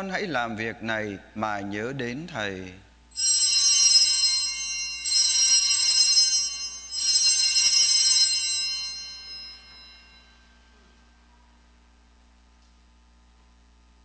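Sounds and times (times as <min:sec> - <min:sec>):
altar bells ringing: 0:03.2 - 0:10.9.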